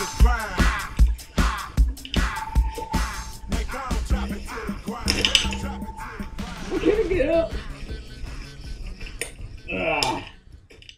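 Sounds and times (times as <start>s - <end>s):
rapping over a beat: 0.0s - 10.4s.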